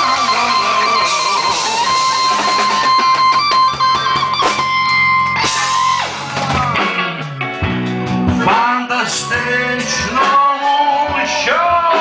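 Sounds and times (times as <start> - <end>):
guitar: 0.0 - 12.0
live band playing instrumental: 0.0 - 12.0.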